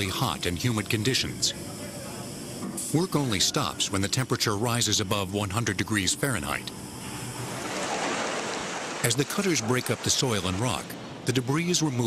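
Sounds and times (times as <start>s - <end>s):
tunnel boring machinery noise: 0.0s - 12.0s.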